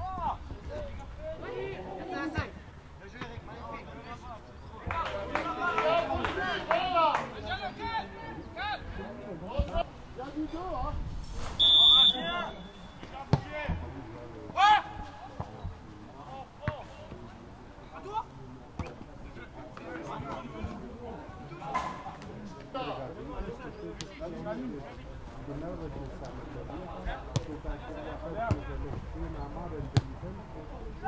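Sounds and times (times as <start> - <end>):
players shouting: 3.8 - 9.9, 11.6 - 15.5
referee's whistle blast: 11.6 - 13.0.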